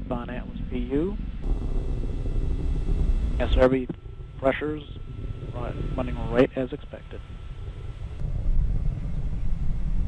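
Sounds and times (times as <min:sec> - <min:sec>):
distant rocket rumble: 0:00.0 - 0:10.0.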